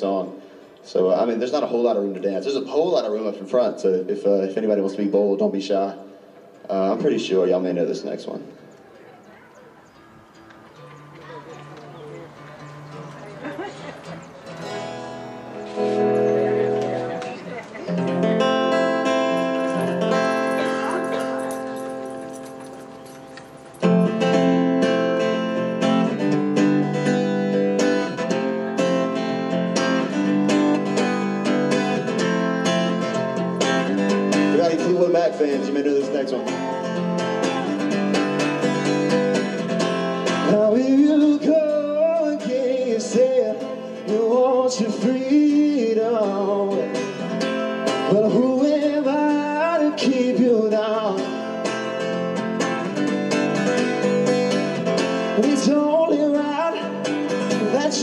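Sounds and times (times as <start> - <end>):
acoustic guitar strumming: 9.7 - 58.0
man singing: 34.5 - 36.9, 40.2 - 51.8, 55.2 - 58.0.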